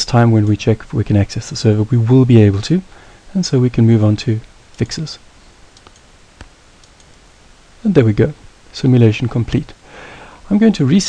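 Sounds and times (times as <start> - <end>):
computer mouse clicking: 5.7 - 7.2.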